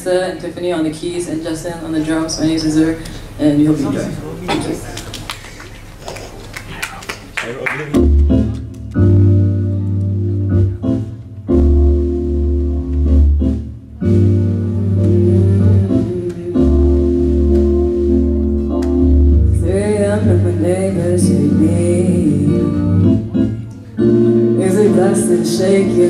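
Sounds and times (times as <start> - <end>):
band playing organ-like chords: 7.8 - 26.0
person singing: 14.4 - 18.0, 19.6 - 26.0.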